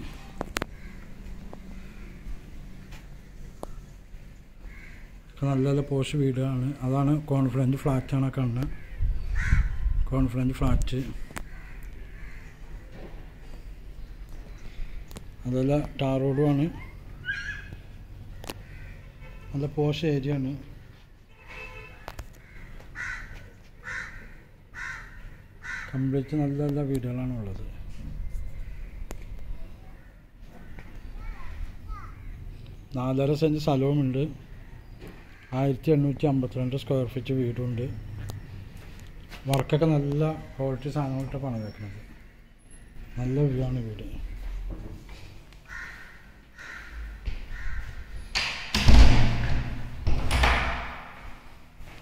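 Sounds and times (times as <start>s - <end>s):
crow cawing: 0.6s - 3.1s, 4.6s - 5.3s, 8.6s - 10.0s, 11.2s - 13.0s, 17.2s - 19.3s, 22.0s - 26.4s, 28.3s - 32.5s, 34.5s - 35.6s, 41.6s - 42.5s, 45.6s - 48.2s
wooden door swinging: 48.3s - 51.2s
loud door thud: 48.3s - 51.4s.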